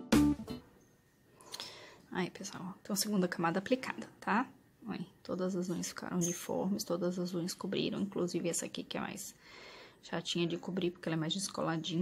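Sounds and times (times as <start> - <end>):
faint breathy hiss: 0.8 - 2.2, 9.3 - 10.1.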